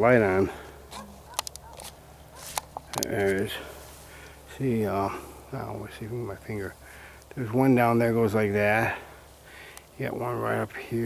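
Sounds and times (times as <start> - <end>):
handling noise: 0.9 - 3.6.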